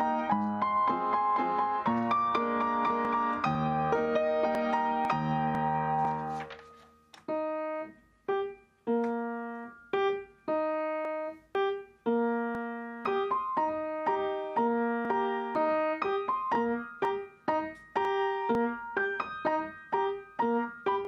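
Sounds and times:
solo piano chords: 0.0 - 21.0.

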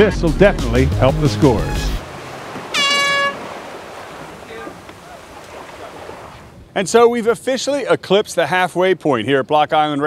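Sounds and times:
wind: 1.6 - 10.0
air horn blast: 2.6 - 3.6.

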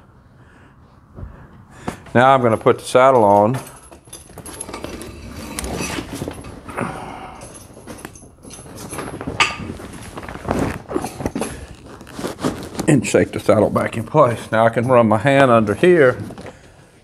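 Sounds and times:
saddle rustling and clinking: 1.2 - 17.0.

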